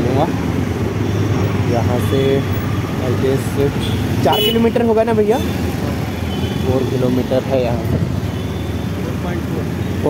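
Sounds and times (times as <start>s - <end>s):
road noise: 0.0s - 10.0s.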